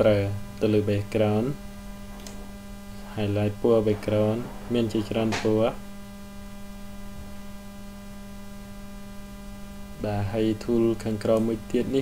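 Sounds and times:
person speaking: 0.0s - 5.8s, 10.0s - 12.0s
electrical hum: 0.0s - 12.0s.

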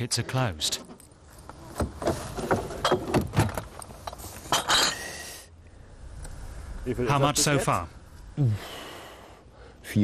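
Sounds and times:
car boot knocks and rattles: 1.5s - 3.8s.

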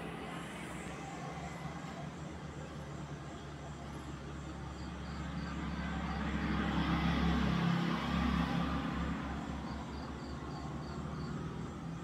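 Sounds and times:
faint insect chirping: 0.8s - 6.7s, 9.4s - 12.0s
motor vehicle passing: 4.6s - 12.0s.

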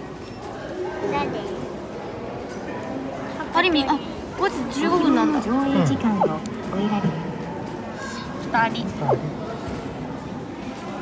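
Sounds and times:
faint indistinct voices: 0.0s - 11.0s
indoor crowd murmur: 0.0s - 11.0s.

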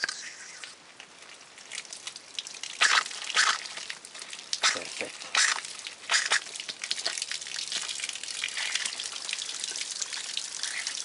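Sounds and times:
water spurting from tap: 0.0s - 11.0s
splash of spray: 2.7s - 3.8s, 4.6s - 7.2s.

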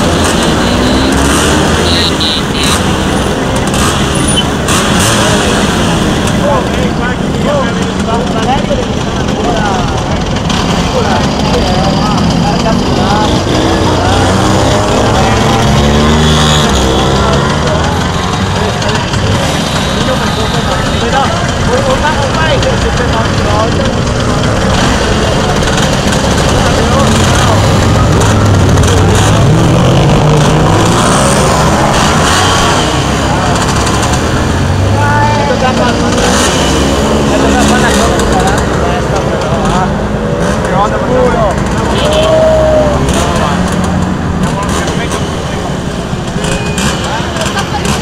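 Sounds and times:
people talking: 0.0s - 48.0s
scooter engines climbing: 0.0s - 48.0s.

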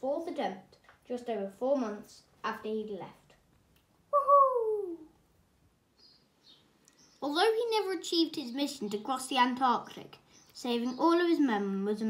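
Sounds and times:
falling vocal cry: 4.1s - 5.1s.

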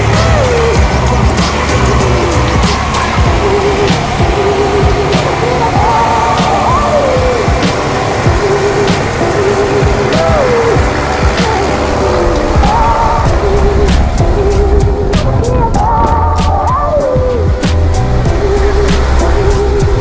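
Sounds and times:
song with gliding lead melody: 0.0s - 20.0s.

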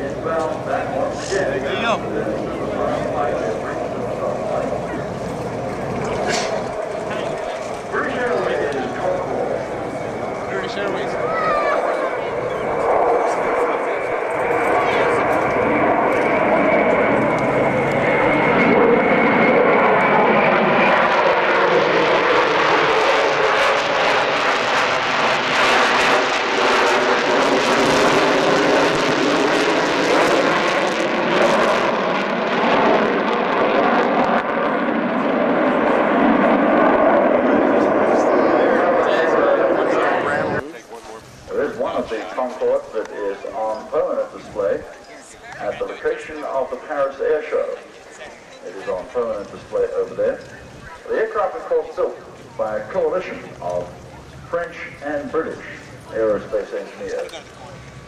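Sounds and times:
jet engine noise with high whine: 0.0s - 58.0s.

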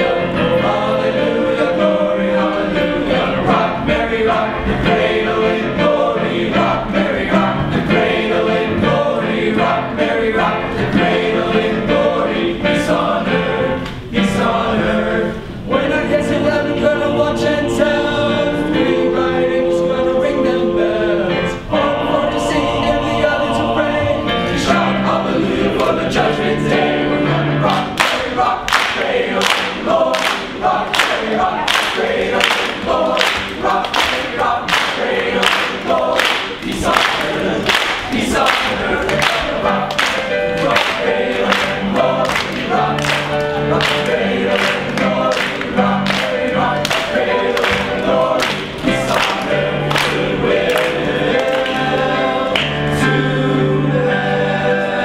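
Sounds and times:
male choir singing: 0.0s - 55.0s
hand claps: 27.7s - 51.8s.

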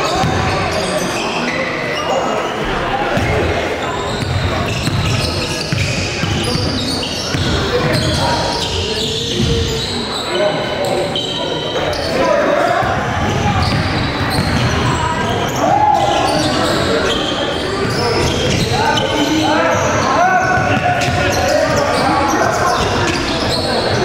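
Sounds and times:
players calling out: 0.0s - 24.0s
basketball bouncing on court: 0.2s - 0.6s, 4.1s - 6.7s, 7.3s - 8.2s, 9.3s - 9.7s, 12.8s - 15.2s, 19.7s - 21.8s.

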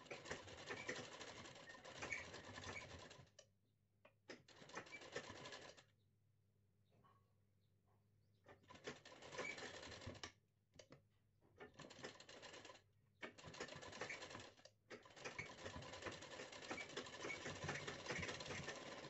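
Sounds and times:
sewing machine rattling: 0.0s - 3.2s, 4.5s - 5.8s, 8.6s - 10.2s, 11.7s - 19.0s.

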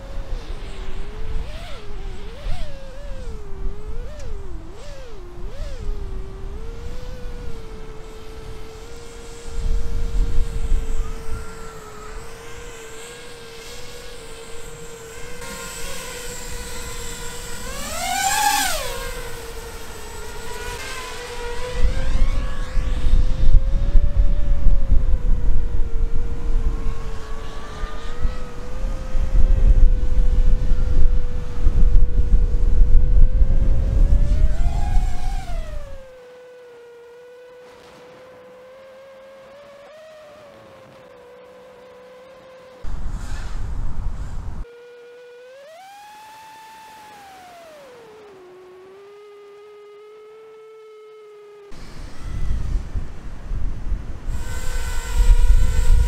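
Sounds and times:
wind rumble on microphone: 0.0s - 36.2s, 42.8s - 44.7s, 51.8s - 56.0s
quadcopter motors whining: 0.0s - 56.0s.

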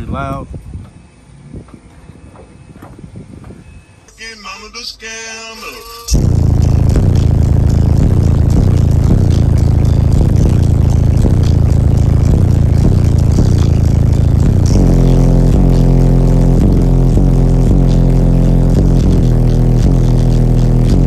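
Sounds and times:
bass-heavy music through subwoofer: 4.2s - 21.0s.

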